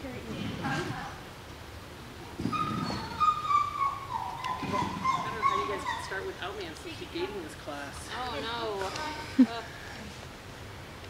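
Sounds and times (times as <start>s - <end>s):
dog whining: 2.3s - 6.6s.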